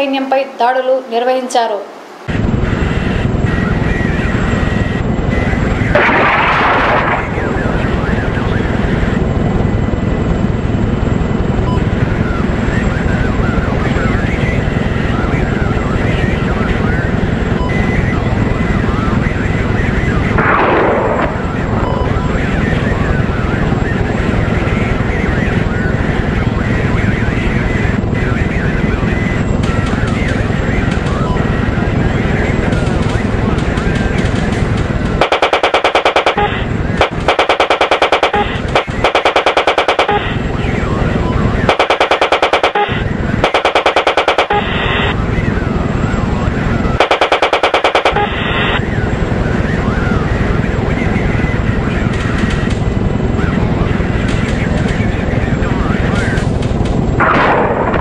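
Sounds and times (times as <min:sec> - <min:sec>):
aircraft drone: 0:00.0 - 0:58.0
automatic gunfire bursts: 0:33.8 - 0:40.2, 0:41.7 - 0:44.8, 0:47.0 - 0:48.3.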